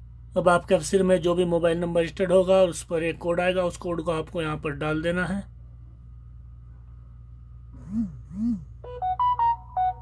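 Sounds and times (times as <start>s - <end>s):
steady low background hum: 0.0s - 10.0s
low hums rising and falling: 7.6s - 9.3s.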